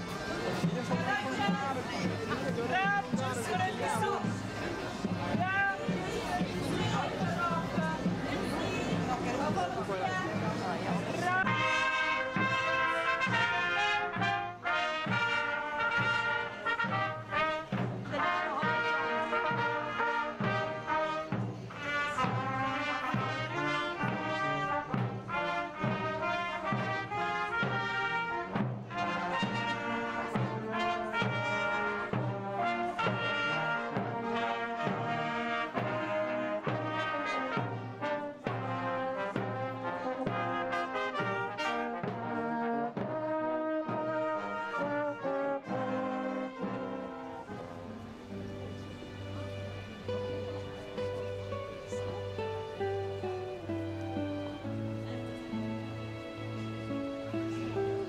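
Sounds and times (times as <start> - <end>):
marching brass band music: 0.0 - 58.0.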